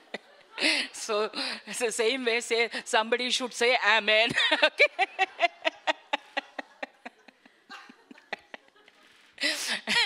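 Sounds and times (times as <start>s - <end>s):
breath: 0.6s - 1.7s, 9.4s - 10.0s
woman laughing: 4.3s - 10.0s.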